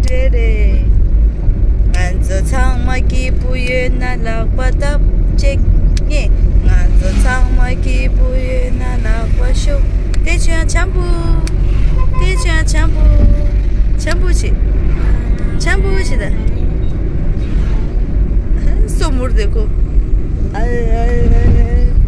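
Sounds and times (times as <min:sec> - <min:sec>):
people talking: 0:00.0 - 0:00.9, 0:02.0 - 0:11.5, 0:12.2 - 0:16.5, 0:18.6 - 0:19.7, 0:20.6 - 0:22.0
vehicle rumble inside cabin: 0:00.0 - 0:22.0.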